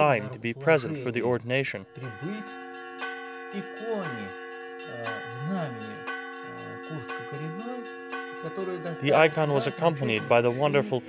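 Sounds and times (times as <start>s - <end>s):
church bells ringing: 0.0s - 11.0s.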